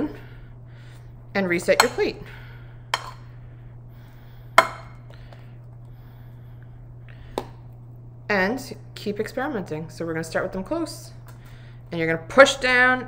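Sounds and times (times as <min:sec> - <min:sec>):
steady low hum: 0:00.0 - 0:13.0
spoon knocking against plate: 0:03.0 - 0:03.2, 0:04.6 - 0:05.0.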